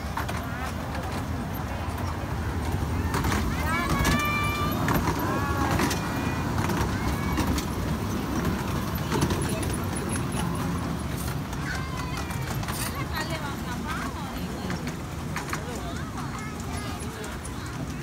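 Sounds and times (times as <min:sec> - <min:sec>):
miniature train rumbling on track: 0:00.0 - 0:18.0
children shouting: 0:03.3 - 0:08.4.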